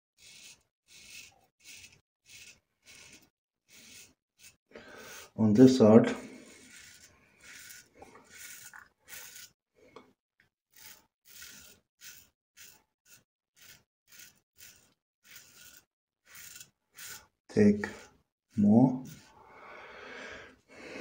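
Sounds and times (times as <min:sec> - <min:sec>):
razor scraping stubble: 0:00.2 - 0:09.6, 0:10.7 - 0:19.4.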